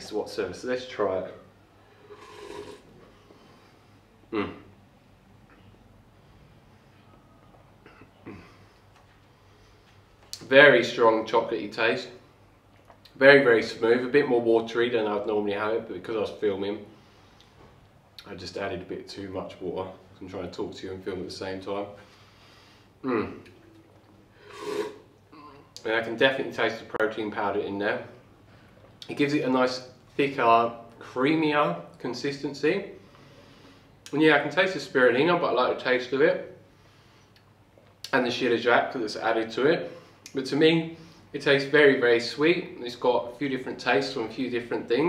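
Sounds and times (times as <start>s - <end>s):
slurping smoothie: 1.9s - 3.1s, 24.4s - 25.1s
person gulping: 2.0s - 3.1s, 4.3s - 4.8s, 7.8s - 8.7s, 23.0s - 25.8s
person exhaling: 24.4s - 25.7s.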